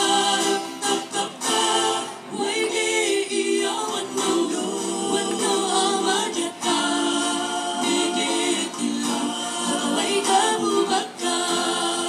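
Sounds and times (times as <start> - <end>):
mixed group singing in harmony: 0.0 - 12.0.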